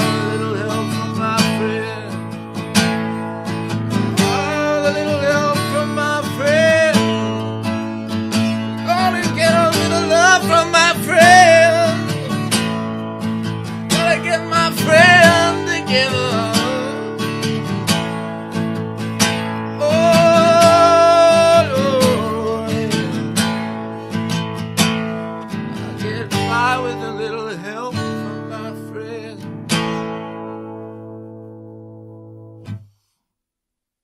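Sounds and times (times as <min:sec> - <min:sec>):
acoustic guitar strumming: 0:00.0 - 0:32.9
person singing long notes: 0:19.8 - 0:23.0.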